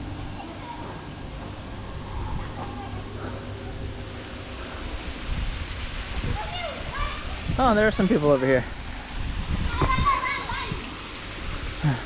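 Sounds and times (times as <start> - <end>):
wind rumble on microphone: 1.4 - 11.8.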